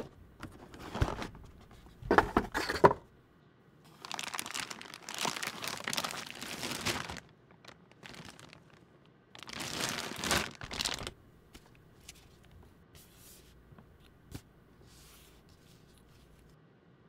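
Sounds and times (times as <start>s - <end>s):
plastic bag crinkling: 3.9s - 12.7s, 13.5s - 16.5s.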